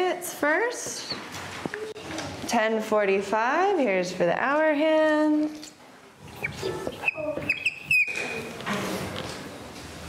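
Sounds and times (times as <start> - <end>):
marker squeaking on whiteboard: 6.2 - 8.6.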